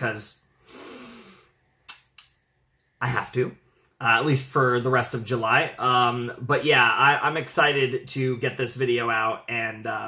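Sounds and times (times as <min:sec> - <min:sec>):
person breathing out: 0:00.6 - 0:01.6
sharp mouth clicks: 0:01.9 - 0:02.4.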